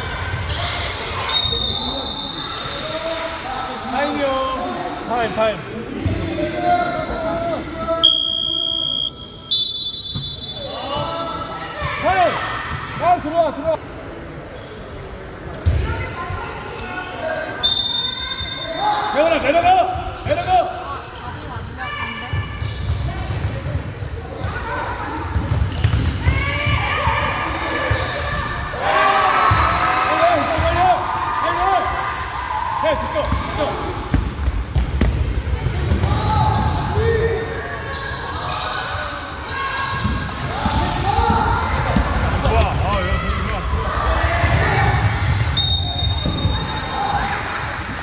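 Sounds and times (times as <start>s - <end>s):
whistle blasts: 1.3s - 2.5s, 8.0s - 10.7s, 17.6s - 18.9s, 45.6s - 47.1s
sneakers squeaking: 7.9s - 17.0s, 20.0s - 28.8s, 33.3s - 43.4s, 44.4s - 47.4s.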